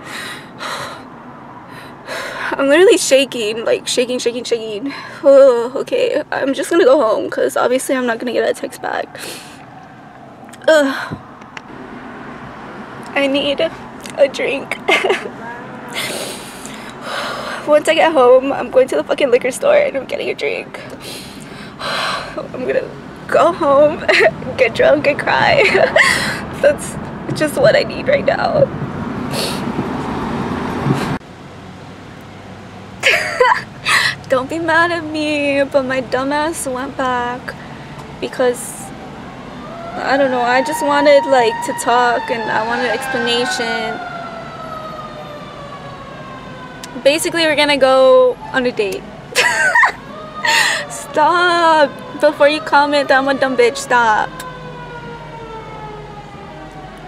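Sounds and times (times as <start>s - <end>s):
car interior hum: 0.0s - 44.0s, 46.8s - 54.5s
traffic noise through car window: 0.0s - 57.0s
short breath: 21.0s - 22.4s, 50.5s - 50.9s
siren falling in pitch: 38.9s - 49.1s, 49.7s - 57.0s.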